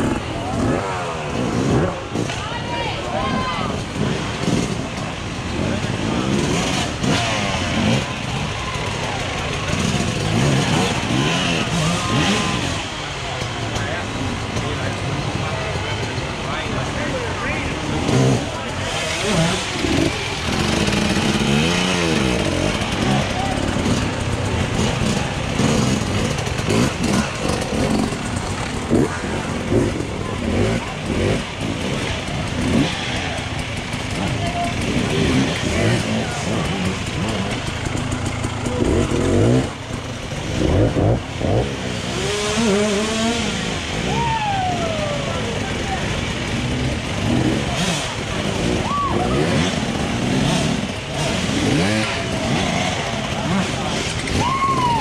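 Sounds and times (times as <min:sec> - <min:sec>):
spectators shouting: 0:00.0 - 0:04.1, 0:07.8 - 0:13.0, 0:42.1 - 0:46.2, 0:47.2 - 0:50.2, 0:51.1 - 0:55.0
dirt bike engines revving: 0:00.0 - 0:55.0.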